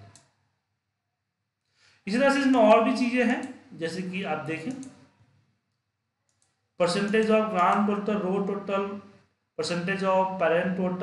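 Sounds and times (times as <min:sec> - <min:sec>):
computer mouse click: 0:00.0 - 0:00.4, 0:04.6 - 0:05.1, 0:06.2 - 0:07.8
person speaking: 0:02.1 - 0:05.2, 0:06.5 - 0:11.0.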